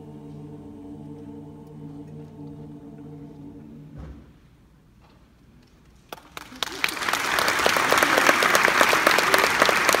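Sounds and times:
crowd applause: 6.2s - 10.0s.

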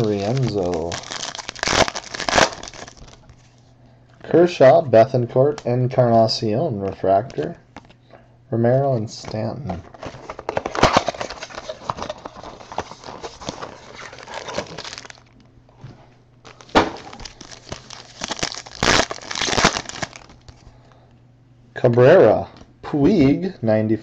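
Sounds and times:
foil wrapper crinkling: 0.0s - 3.5s, 9.8s - 15.4s, 16.4s - 20.6s.

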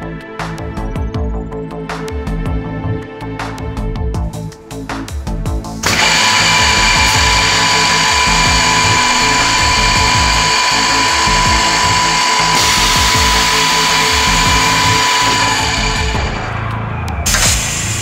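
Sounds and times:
background music with a beat: 0.0s - 18.0s
drill motor whining: 5.8s - 16.6s.

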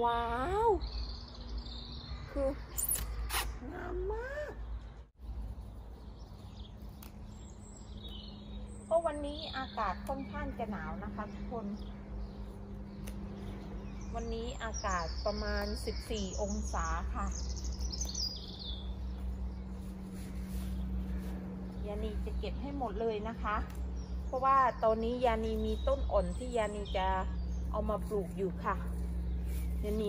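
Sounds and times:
songbird singing: 0.0s - 30.0s
steady low hum: 0.0s - 30.0s
garden scissors snipping stem: 2.8s - 3.6s, 6.4s - 8.2s, 10.0s - 10.5s, 12.9s - 13.5s, 23.5s - 24.5s.

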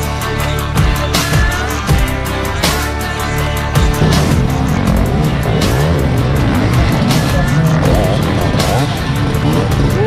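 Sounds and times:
background music with steady beat: 0.0s - 10.0s
motorcycle engines revving: 1.2s - 10.0s.

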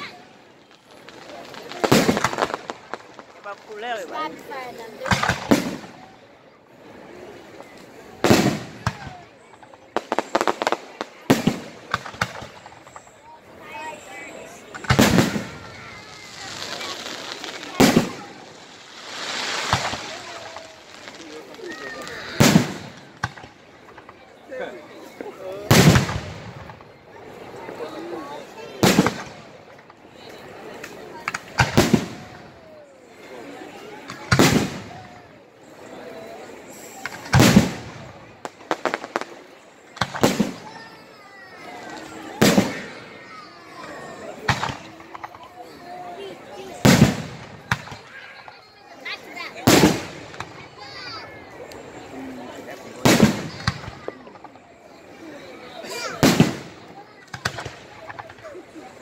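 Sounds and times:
fireworks crackling: 0.0s - 59.0s
fireworks booming bursts: 0.8s - 4.0s, 5.0s - 6.1s, 8.1s - 13.2s, 13.9s - 24.1s, 25.6s - 27.0s, 28.8s - 30.0s, 31.2s - 32.6s, 34.1s - 35.2s, 36.7s - 45.3s, 46.6s - 48.6s, 49.5s - 51.3s, 53.0s - 54.4s, 55.8s - 58.5s.

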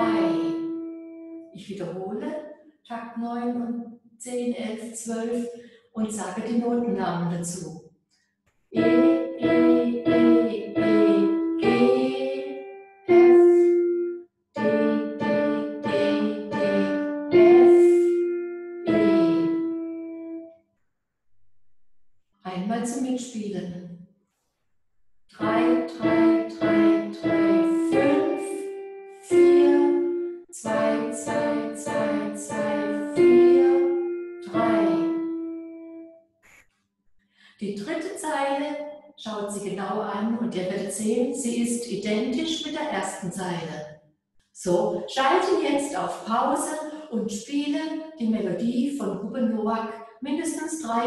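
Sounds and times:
piano melody: 0.0s - 1.6s, 8.8s - 20.5s, 25.4s - 36.1s.

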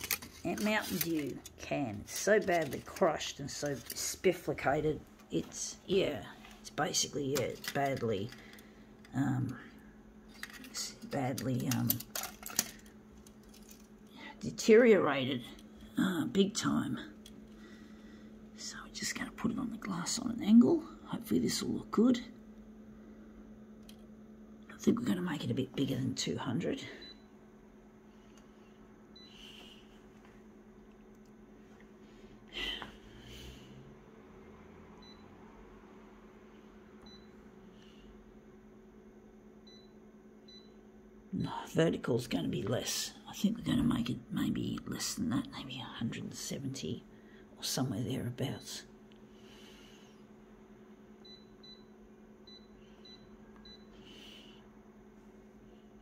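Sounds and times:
copier hum: 0.0s - 56.0s.

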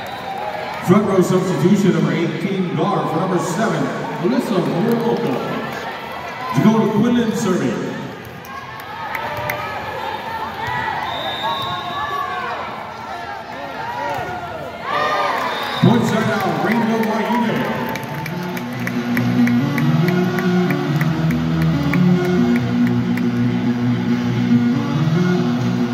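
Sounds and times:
crowd calling and cheering: 0.0s - 25.9s
music with steady beat: 18.2s - 25.9s.

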